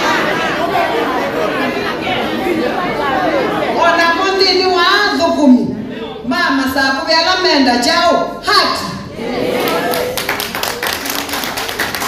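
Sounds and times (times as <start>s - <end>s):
audience applause: 9.6s - 12.0s.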